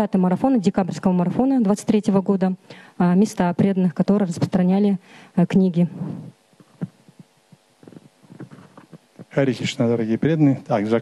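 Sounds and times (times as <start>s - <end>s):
microphone handling thumps: 4.3s - 4.6s, 5.9s - 9.4s.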